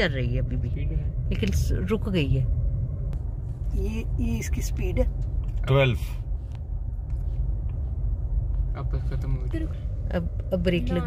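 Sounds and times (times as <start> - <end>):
car engine idling in cabin: 0.0 - 11.0.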